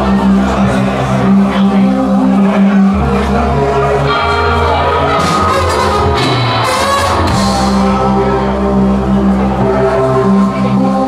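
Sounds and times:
live rock band sustained chord: 0:00.0 - 0:11.0.

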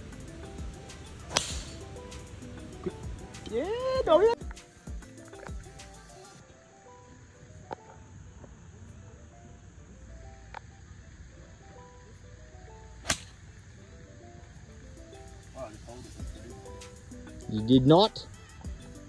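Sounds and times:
soft background music: 0:00.0 - 0:19.0
golf club striking ball: 0:00.9 - 0:03.6, 0:13.0 - 0:13.4.

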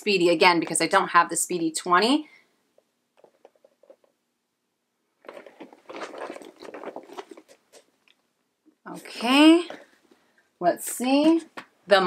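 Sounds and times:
crackly rustle of handbags: 0:05.2 - 0:08.2.

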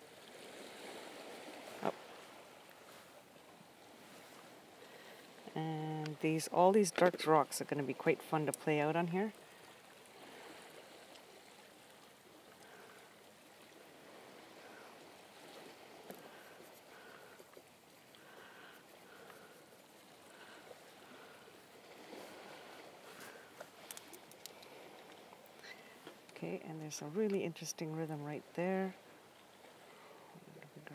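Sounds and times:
soft wash like distant water: 0:00.0 - 0:30.9.

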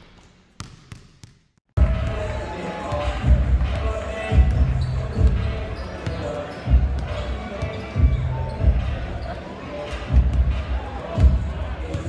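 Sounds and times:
crowd chatter: 0:01.8 - 0:12.0.

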